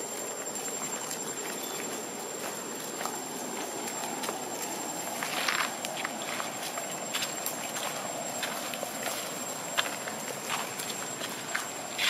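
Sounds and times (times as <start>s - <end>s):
dry leaves crackling underfoot: 0.0s - 12.0s
steady outdoor hiss: 0.0s - 12.0s
thin high whine: 0.0s - 12.0s.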